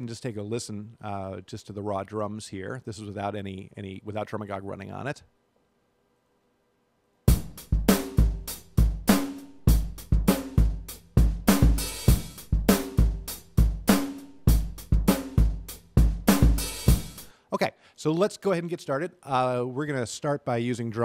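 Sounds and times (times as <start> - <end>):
hi-hat: 7.3 - 17.3
snare drum: 7.3 - 17.3.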